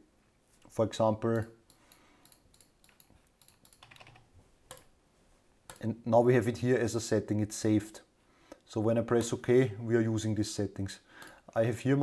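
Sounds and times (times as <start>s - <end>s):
computer keyboard keystrokes: 1.3s - 4.9s.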